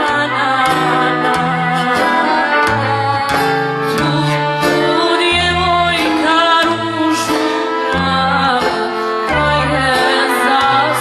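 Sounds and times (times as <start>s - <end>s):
accordion: 0.0s - 11.0s
acoustic guitar: 0.0s - 11.0s
hand drum: 0.0s - 11.0s
violin: 0.0s - 11.0s
woman singing with vibrato: 0.0s - 11.0s.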